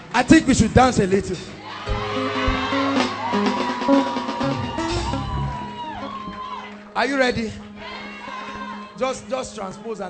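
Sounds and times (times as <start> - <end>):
held keyboard chords: 1.8 - 7.8
drum hits: 1.9 - 5.8
steady bass note: 1.9 - 5.8.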